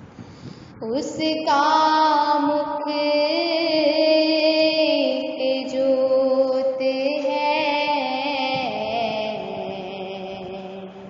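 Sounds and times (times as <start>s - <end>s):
chant-style singing: 0.8s - 11.0s.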